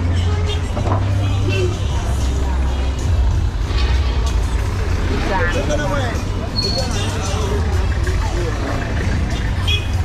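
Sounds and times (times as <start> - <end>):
minibus engine humming: 0.0 - 10.0
music: 0.0 - 10.0
voices of passers-by: 0.0 - 10.0.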